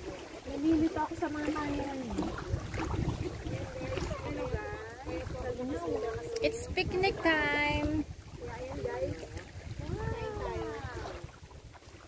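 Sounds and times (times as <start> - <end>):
women talking: 0.4 - 2.6, 3.3 - 11.2
wind rumble: 0.4 - 12.0.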